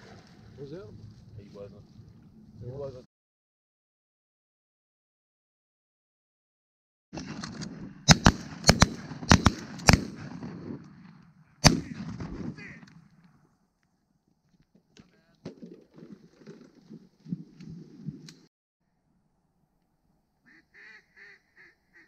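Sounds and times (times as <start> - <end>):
shotgun shots: 7.2 - 12.9.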